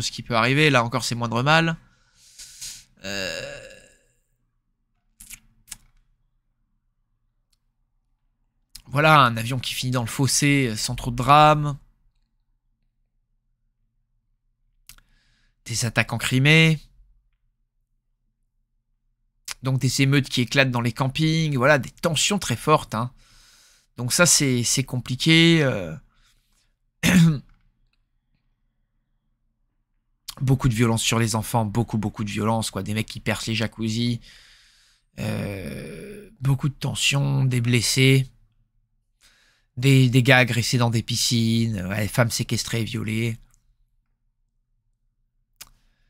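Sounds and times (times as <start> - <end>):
man sighing: 2.2 - 4.0.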